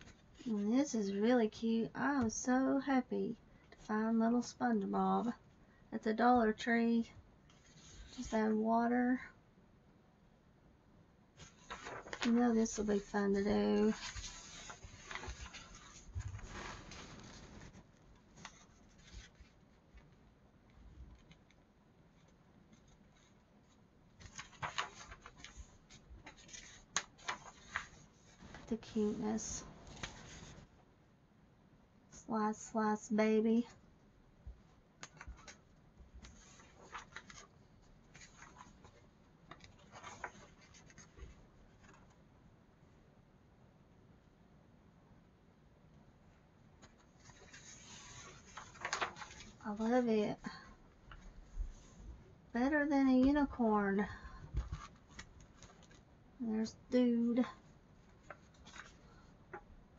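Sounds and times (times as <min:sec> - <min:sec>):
paper pages rustling: 0:11.4 - 0:20.2, 0:22.2 - 0:30.7, 0:35.0 - 0:42.2, 0:46.8 - 0:50.5, 0:54.6 - 0:56.1, 0:57.6 - 0:59.7.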